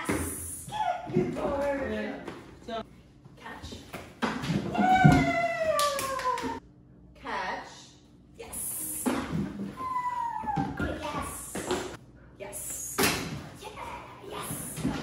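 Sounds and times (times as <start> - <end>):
dog whining: 9.8 - 11.0.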